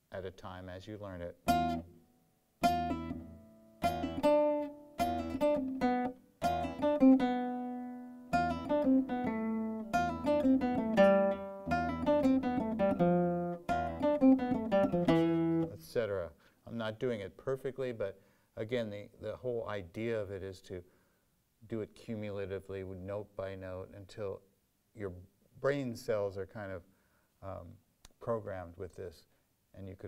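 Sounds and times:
flamenco guitar playing: 1.4 - 15.8.

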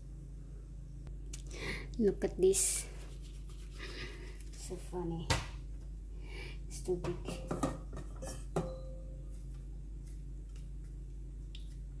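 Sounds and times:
steady low hum: 0.0 - 12.0
hands rubbing sticky dough: 2.6 - 4.8, 9.3 - 12.0.

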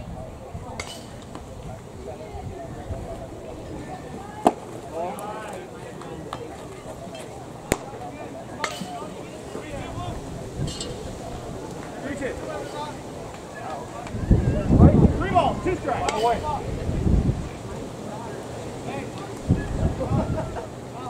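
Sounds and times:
faint talk of people: 0.0 - 21.0
baseball smacking into mitt: 7.7 - 8.0.

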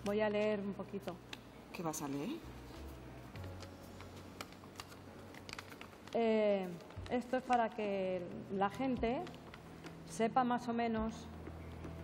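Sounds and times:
paper rustling and clicks: 3.3 - 8.0, 8.8 - 10.1.

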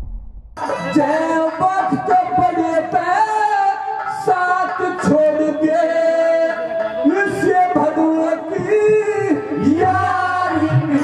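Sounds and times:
harmonium chords: 0.6 - 11.0
man singing into microphone: 0.6 - 11.0.

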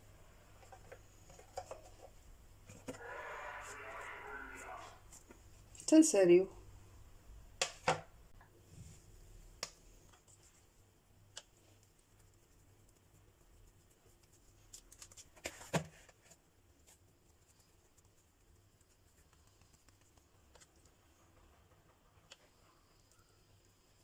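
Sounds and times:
soft taps and clicks of dough handling: 9.5 - 23.2.

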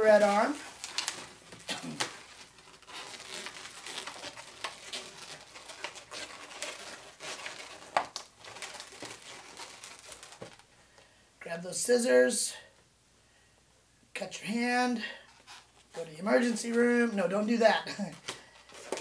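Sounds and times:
balloons rubbing and crinkling: 0.0 - 10.8, 15.2 - 17.1.

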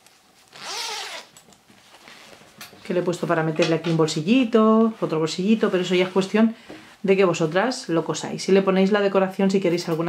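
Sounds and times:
zipper pulled open: 0.5 - 1.4.

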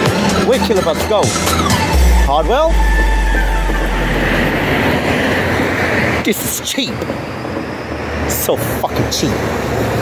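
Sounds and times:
tone sliding down in pitch: 1.7 - 5.8
vehicle passing by: 1.8 - 6.3.

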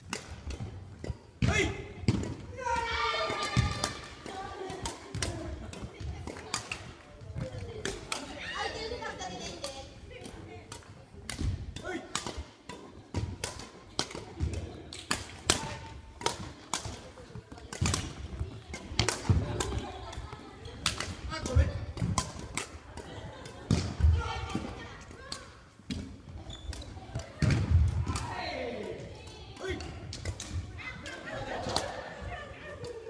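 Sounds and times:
rackets striking shuttlecock: 0.0 - 33.0
voices in hall: 1.4 - 33.0.

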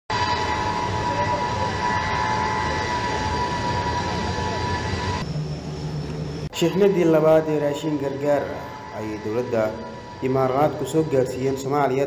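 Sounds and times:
jet engines whining: 0.1 - 12.0.

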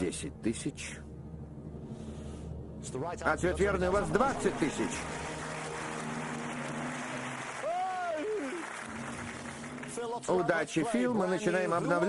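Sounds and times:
low music bed: 0.0 - 7.7
audience applauding: 4.2 - 10.2.

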